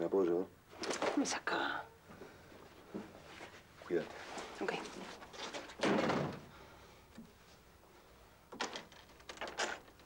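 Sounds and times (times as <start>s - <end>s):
door slamming shut: 5.8s - 6.5s.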